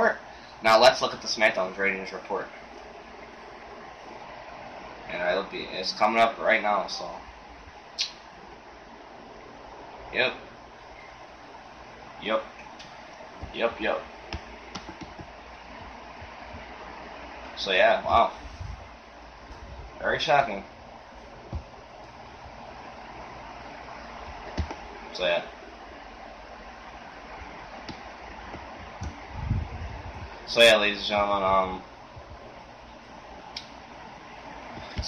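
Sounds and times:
steady background hiss: 0.0s - 35.0s.

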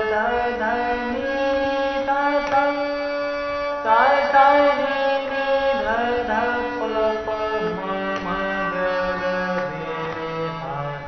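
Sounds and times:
harmonium playing: 0.0s - 11.0s.

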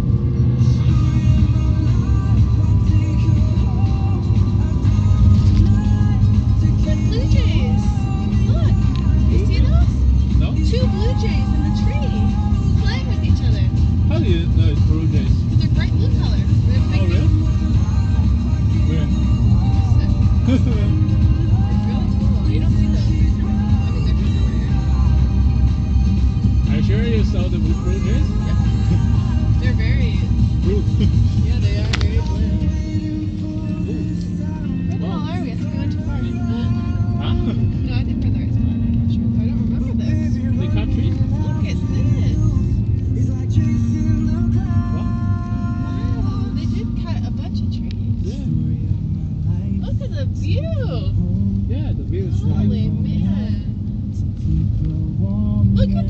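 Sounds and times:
road and engine rumble: 0.0s - 56.0s
song with singing on car radio: 0.0s - 56.0s.

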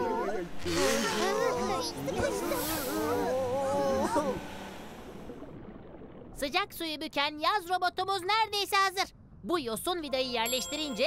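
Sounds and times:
cartoon voices straining: 0.0s - 4.5s.

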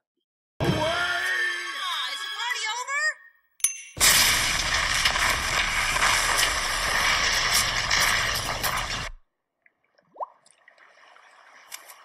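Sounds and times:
small drips and clicks: 9.6s - 12.0s.

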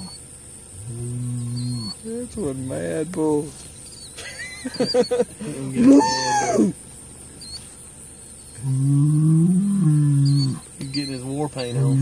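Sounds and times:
bull bellowing: 0.0s - 3.4s, 4.7s - 6.8s, 8.6s - 12.0s.

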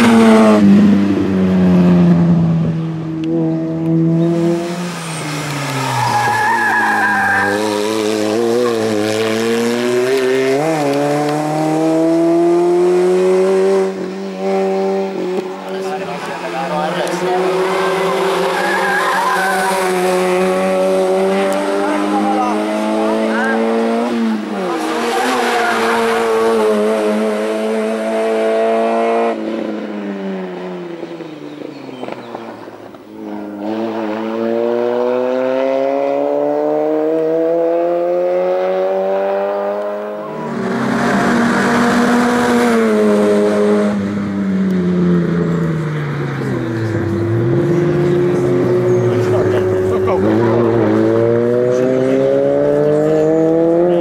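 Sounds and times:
race car engine accelerating: 0.0s - 54.0s
tyre squeal: 5.0s - 7.9s, 17.6s - 20.0s.

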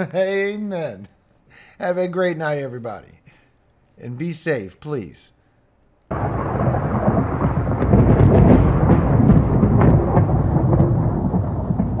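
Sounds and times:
crackles: 5.7s - 12.0s
rain: 6.1s - 12.0s
thunder rumbling: 6.1s - 12.0s.

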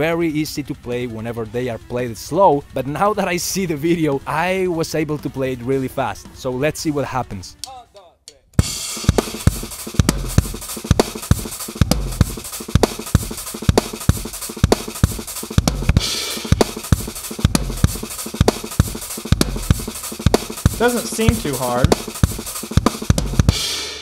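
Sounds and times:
cymbal wash: 8.6s - 24.0s
drum kit playing fast groove: 8.6s - 24.0s.

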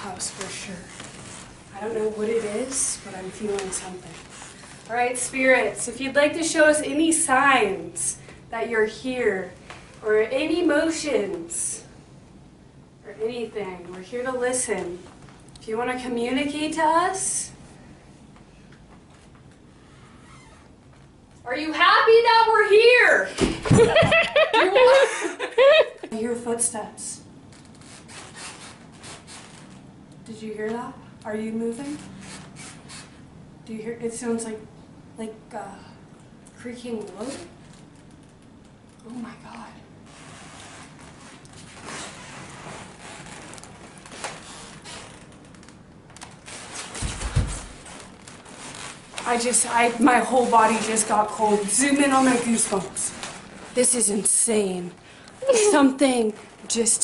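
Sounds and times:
rustling and scraping: 0.0s - 5.6s, 27.4s - 29.9s, 31.8s - 33.3s, 40.0s - 54.8s.

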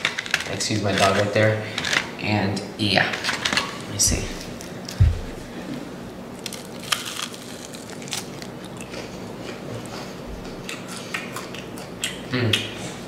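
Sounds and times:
low thump: 5.0s - 5.5s
chewing crunches: 6.3s - 12.6s.

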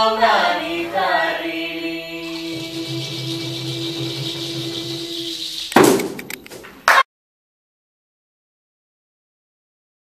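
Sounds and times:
held drone chord: 1.7s - 5.7s
scattered clicks: 6.0s - 6.6s.

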